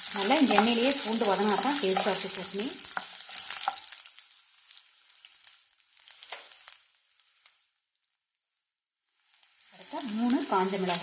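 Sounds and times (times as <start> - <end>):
garlic and lentils sizzling in oil: 0.0 - 11.0
small crackles of frying: 0.0 - 11.0.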